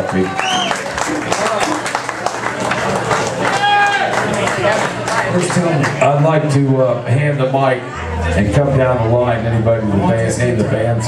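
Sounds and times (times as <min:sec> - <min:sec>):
scattered clapping: 0:00.0 - 0:06.1
audience talking: 0:00.0 - 0:11.0.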